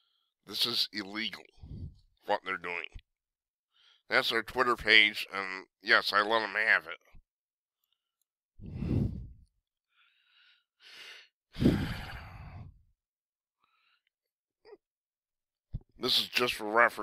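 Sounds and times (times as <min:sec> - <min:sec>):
breath drawn in: 0:08.6 - 0:09.5
man sighing heavily: 0:11.6 - 0:12.7.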